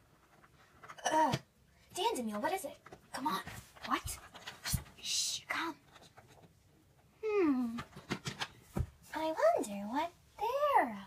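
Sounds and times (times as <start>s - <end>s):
plastic toys knocking on wooden floor: 7.7s - 9.0s.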